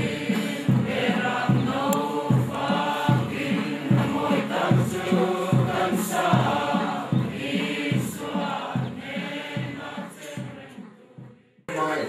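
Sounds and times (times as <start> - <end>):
crowd singing a hymn: 0.0 - 12.0.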